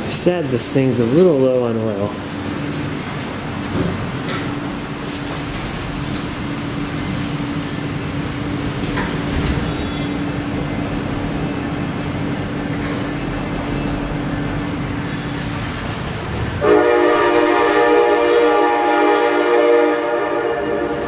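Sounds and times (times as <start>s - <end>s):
train horn chord: 16.6s - 21.0s.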